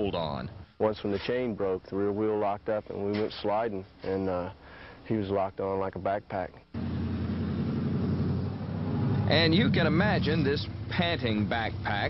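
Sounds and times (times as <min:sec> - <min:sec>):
motorcycle engine rumbling: 0:06.8 - 0:12.0.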